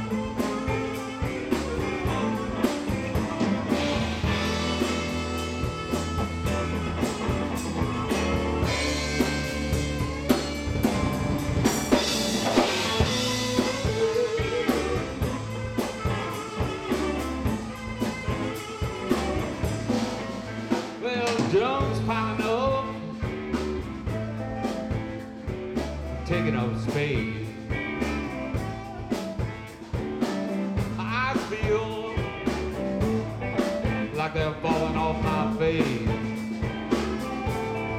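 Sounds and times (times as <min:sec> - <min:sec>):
bending lead guitar line: 0:00.0 - 0:37.9
blues band playing: 0:00.0 - 0:37.9.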